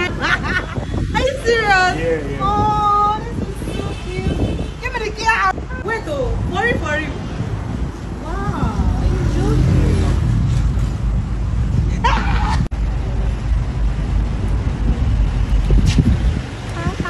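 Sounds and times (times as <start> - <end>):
rumbling street noise: 0.0 - 17.0.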